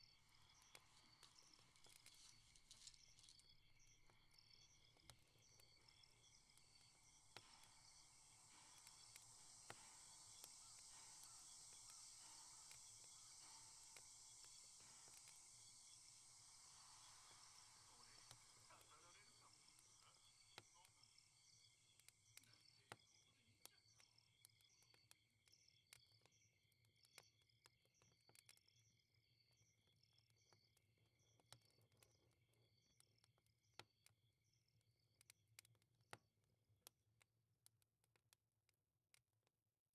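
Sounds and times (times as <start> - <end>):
high chirping: 0.0 - 21.9
wood fire crackling: 0.0 - 25.2.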